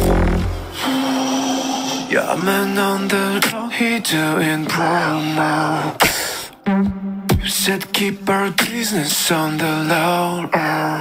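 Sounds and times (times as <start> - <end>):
beatboxer bass drone: 0.0 - 1.8
held vocal note: 0.0 - 7.0.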